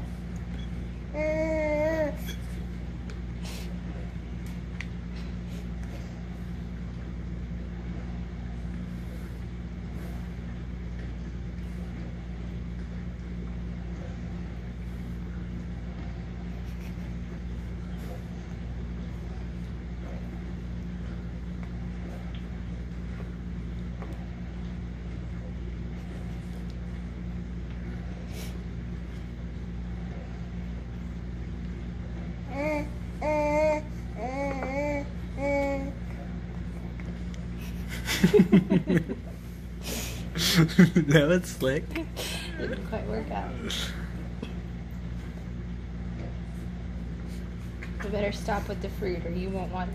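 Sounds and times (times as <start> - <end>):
steady low hum: 0.0 - 49.9.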